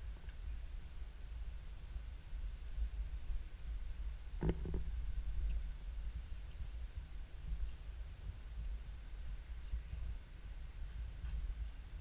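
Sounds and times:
wind buffeting microphone: 0:02.0 - 0:12.0.

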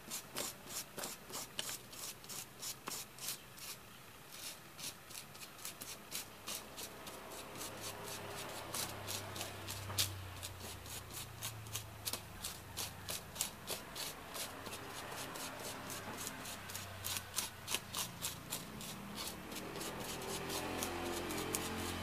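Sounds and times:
object scraping powder on paper: 0:00.0 - 0:22.0.

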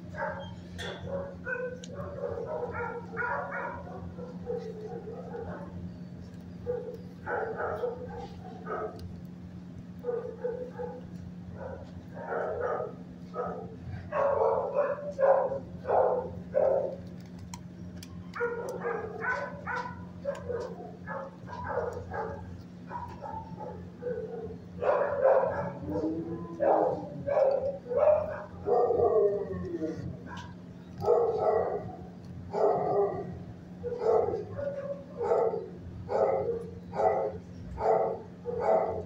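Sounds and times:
steady low hum: 0:00.0 - 0:39.0
dog barking: 0:00.1 - 0:05.8, 0:06.6 - 0:09.0, 0:10.0 - 0:17.0, 0:18.3 - 0:29.4, 0:30.2 - 0:39.0.

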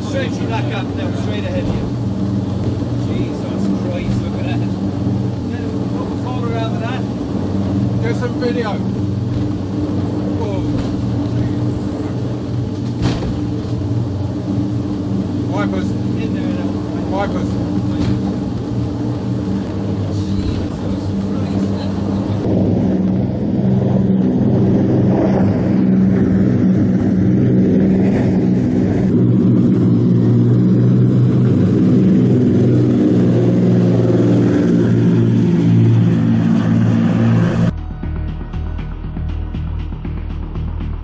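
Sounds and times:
powerboat engines droning: 0:00.0 - 0:41.0.

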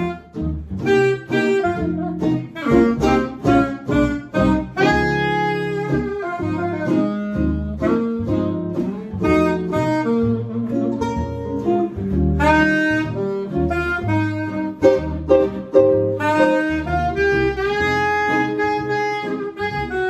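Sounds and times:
guitar chords: 0:00.0 - 0:20.0
plucked upright bass: 0:00.0 - 0:20.0
saxophone lead line: 0:00.0 - 0:20.0.

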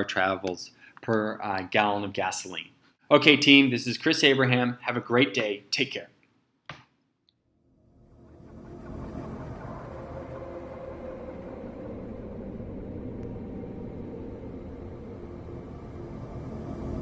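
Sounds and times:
faint sustained tones: 0:07.7 - 0:17.0
low rumbling drone: 0:07.7 - 0:17.0.

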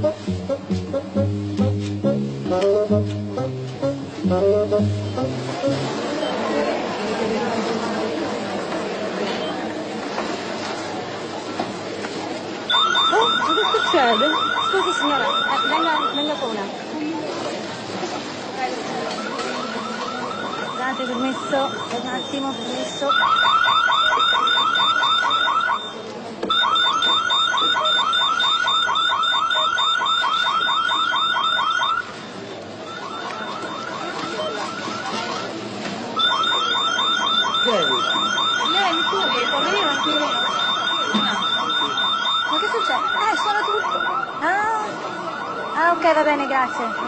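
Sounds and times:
security alarm warbling chirps: 0:12.7 - 0:16.6, 0:19.3 - 0:32.1, 0:36.2 - 0:47.0.

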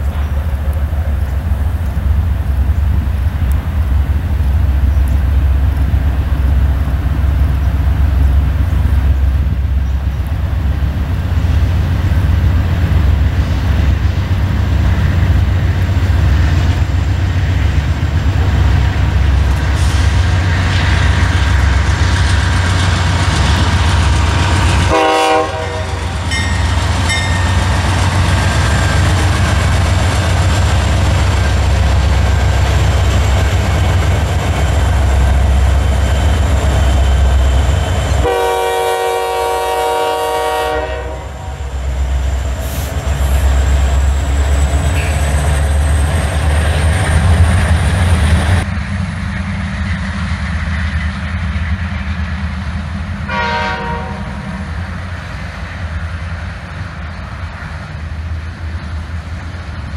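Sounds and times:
freight cars rolling past: 0:00.0 - 0:39.6, 0:40.8 - 0:53.2
diesel locomotive engine rumble: 0:00.0 - 0:59.9
locomotive horn blasts: 0:24.9 - 0:26.5, 0:38.2 - 0:41.6, 0:53.3 - 0:54.4.

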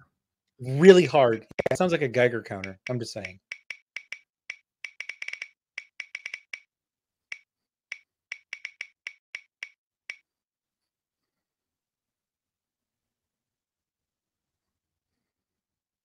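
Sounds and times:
spinning wheel ticking clicks: 0:02.5 - 0:04.2.

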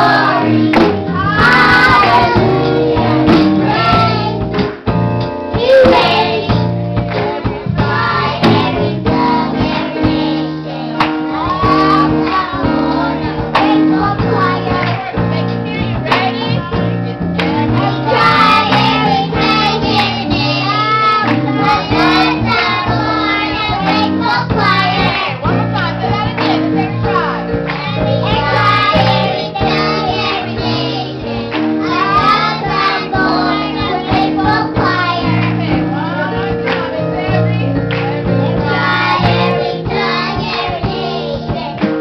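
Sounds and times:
children's choir singing: 0:00.0 - 0:04.6, 0:05.5 - 0:42.0
held bass notes: 0:00.0 - 0:42.0
live band with drum kit: 0:00.0 - 0:42.0.

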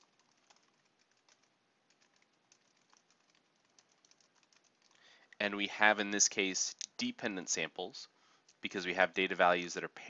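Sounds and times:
keyboard typing: 0:00.0 - 0:05.0.

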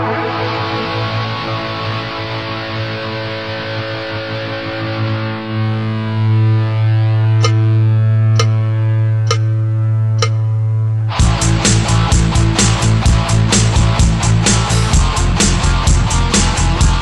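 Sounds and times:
distorted electric guitar chord: 0:00.0 - 0:17.0
sharp percussive hits: 0:08.4 - 0:08.6, 0:09.3 - 0:09.6, 0:10.2 - 0:10.4.

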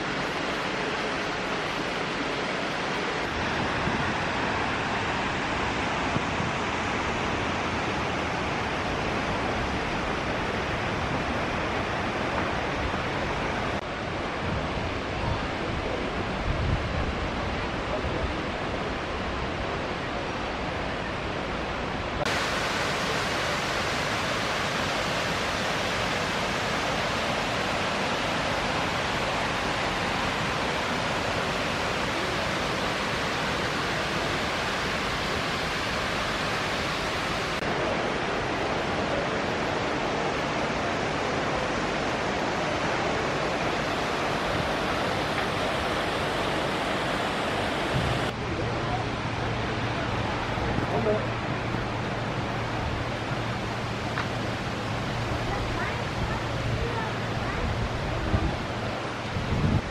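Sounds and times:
river water rushing: 0:00.0 - 0:59.9.

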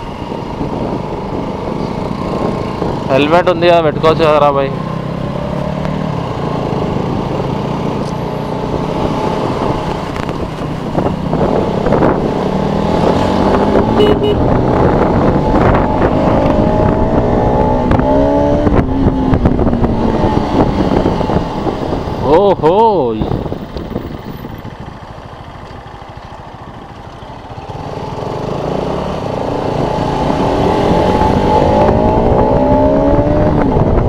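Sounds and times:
motorcycle engine: 0:00.0 - 0:34.0
wind and road noise: 0:00.0 - 0:34.0.

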